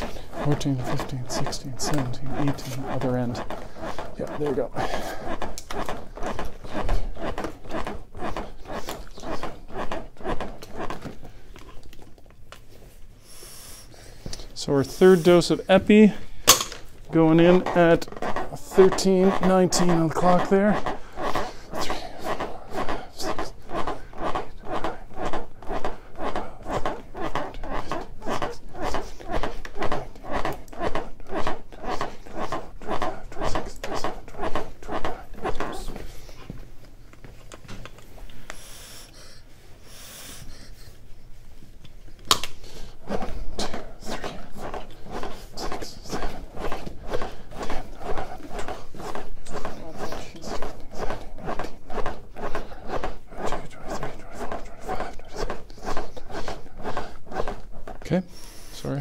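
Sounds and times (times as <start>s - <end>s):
chest compressions on training manikin: 0.0s - 59.0s.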